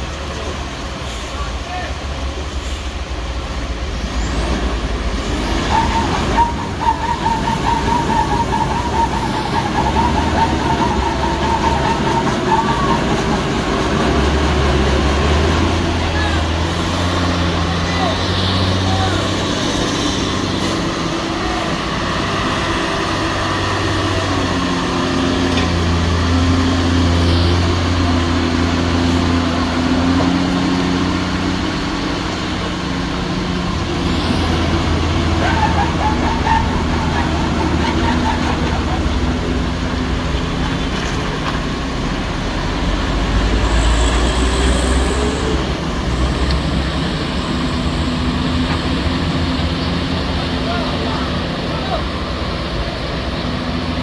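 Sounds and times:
truck diesel engine labouring: 0.0s - 54.0s.

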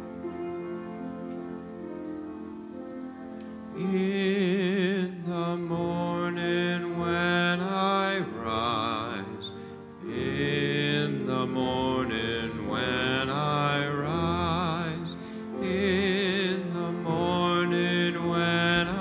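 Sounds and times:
accompanying chords: 0.0s - 19.0s
solo voice singing a hymn: 3.7s - 19.0s.

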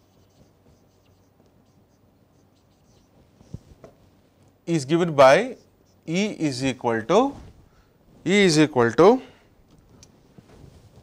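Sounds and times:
marker writing on whiteboard: 0.0s - 3.9s, 5.2s - 6.4s.

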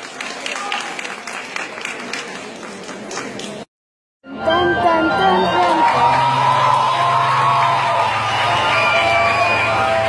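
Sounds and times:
audience crowd noise: 0.0s - 3.7s, 4.4s - 10.0s.

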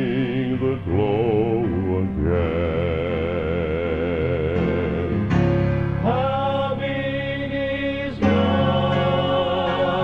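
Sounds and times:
male quartet singing in harmony: 0.0s - 5.3s, 6.0s - 10.0s.

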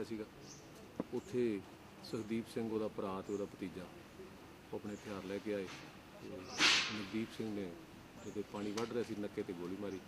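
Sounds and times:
man speaking: 4.7s - 10.0s
short loud hiss: 6.4s - 7.3s.

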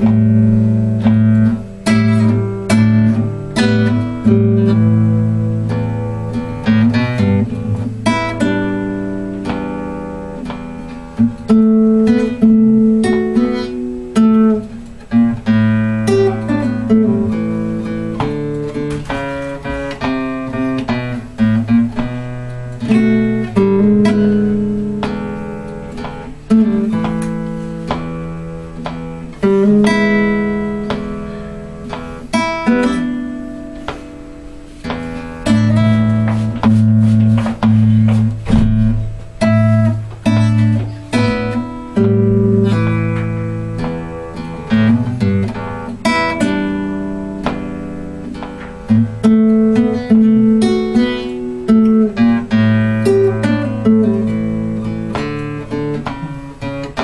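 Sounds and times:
fingerpicked acoustic guitar blues: 0.0s - 57.0s.

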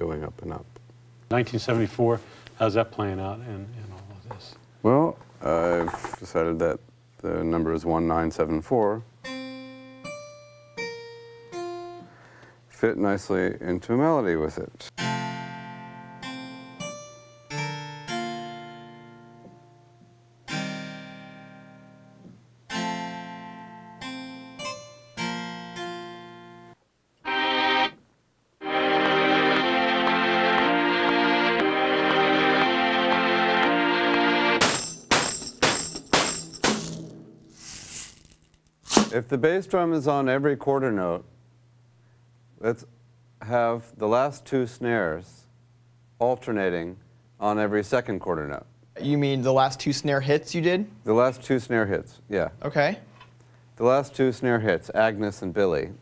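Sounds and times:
snare drum hits: 34.6s - 37.4s, 38.9s - 39.2s.

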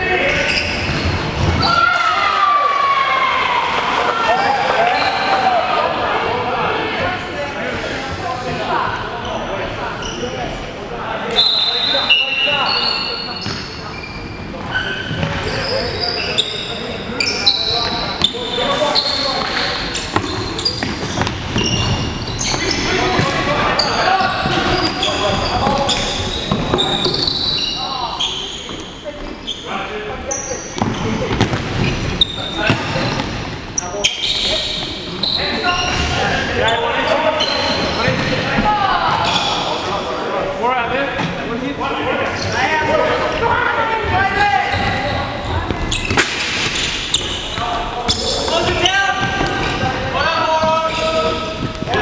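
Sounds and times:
shoes squeaking on floor: 0.2s - 1.9s, 9.2s - 10.6s, 11.3s - 40.0s, 42.3s - 52.0s.

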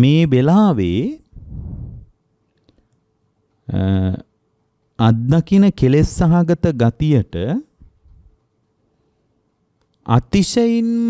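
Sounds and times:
man intoning a sermon: 0.0s - 1.3s, 3.7s - 4.3s, 5.0s - 7.8s, 10.0s - 11.0s
soft breath close to microphone: 1.3s - 2.9s.

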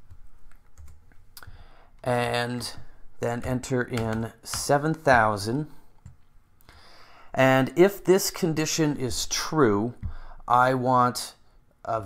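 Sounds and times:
computer keyboard keystrokes: 0.5s - 1.1s, 3.4s - 5.1s.

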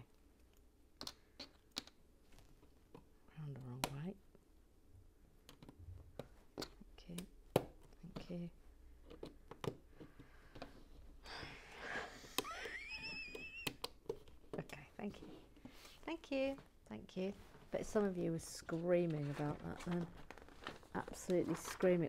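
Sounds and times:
breathy sound: 10.0s - 12.6s
plastic pieces handled: 18.6s - 22.0s.

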